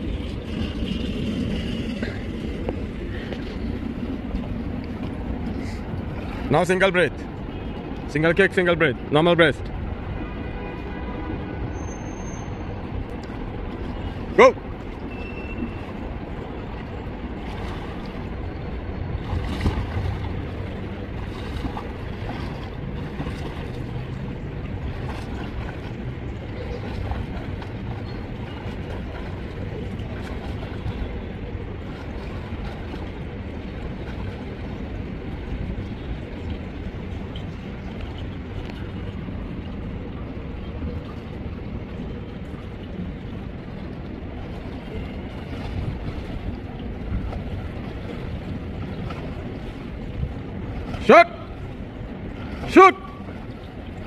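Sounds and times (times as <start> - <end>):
water splashing from swimmer: 13.1 - 54.0.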